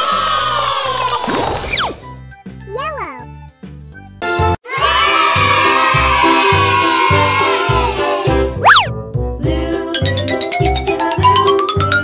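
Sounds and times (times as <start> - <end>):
children's music with steady beat: 2.7 - 12.0
sweeping pitch sound effect: 8.6 - 9.0.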